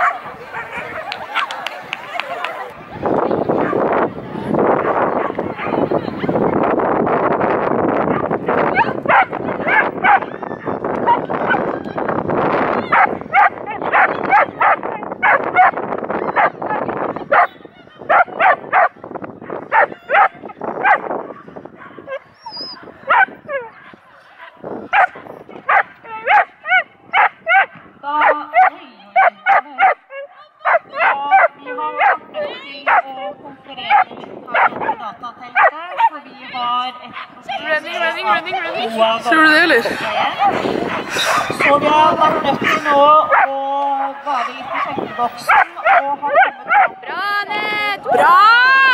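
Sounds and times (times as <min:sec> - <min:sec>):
dog barking: 0:00.0 - 0:01.5, 0:08.1 - 0:10.3, 0:12.9 - 0:15.8, 0:17.3 - 0:17.5, 0:18.1 - 0:18.9, 0:19.7 - 0:32.2, 0:32.9 - 0:33.1, 0:33.9 - 0:35.0, 0:35.6 - 0:36.2, 0:42.6 - 0:43.5, 0:44.4 - 0:47.0.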